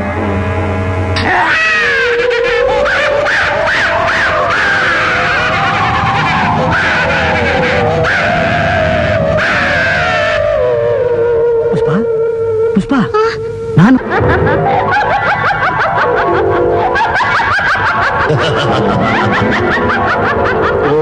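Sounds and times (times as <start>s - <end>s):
high wavering wailing tones: 0.0s - 18.3s
eerie film score: 0.0s - 21.0s.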